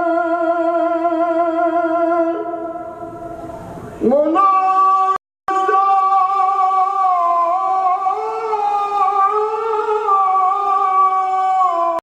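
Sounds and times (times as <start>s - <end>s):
man singing a long note: 0.0s - 12.0s.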